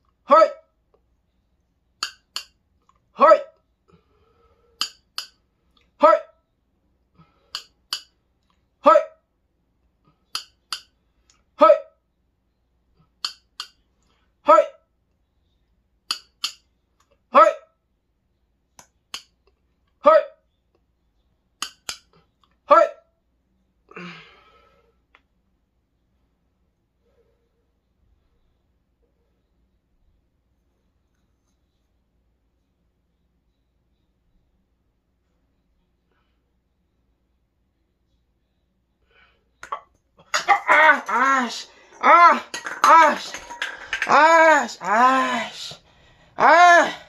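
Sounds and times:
man crying out: 40.4 - 43.4, 44.0 - 45.8, 46.4 - 47.0.

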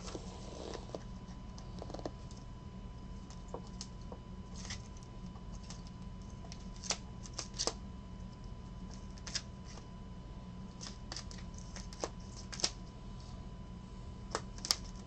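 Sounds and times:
steady low hum: 0.0 - 15.0.

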